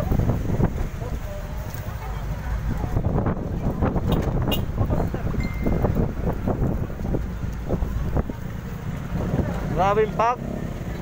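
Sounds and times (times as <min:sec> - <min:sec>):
wind buffeting microphone: 0:00.0 - 0:01.4, 0:02.0 - 0:10.2.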